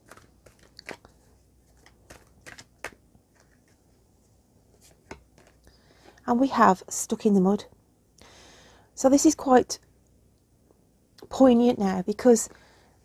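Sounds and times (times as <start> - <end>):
cards being shuffled: 0.0 - 4.0, 4.7 - 5.7.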